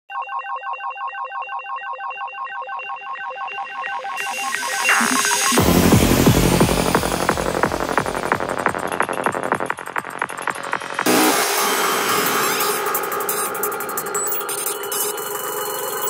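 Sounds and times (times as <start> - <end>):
pulsing synthesizer tone: 1.4 - 16.0
kick drum and bass beat: 4.2 - 14.6.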